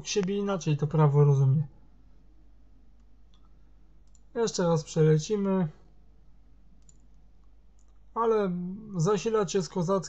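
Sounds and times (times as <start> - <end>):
low steady hum: 0.0 - 10.0
computer mouse clicks: 3.0 - 4.3, 6.8 - 8.1.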